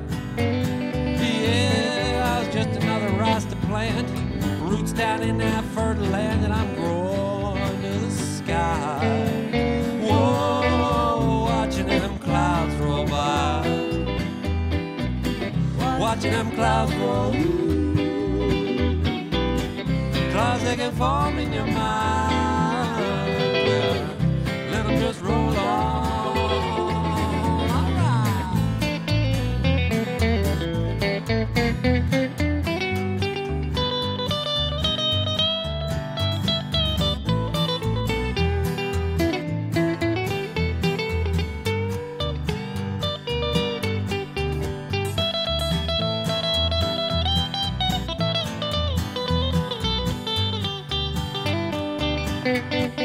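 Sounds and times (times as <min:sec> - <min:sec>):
electric guitar lead: 0:00.0 - 0:53.0
person singing: 0:01.0 - 0:14.3, 0:15.5 - 0:29.1.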